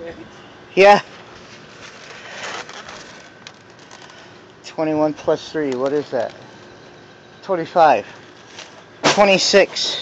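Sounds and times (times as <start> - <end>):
egg cartons rustling and scraping: 1.0 - 6.4, 7.8 - 10.0.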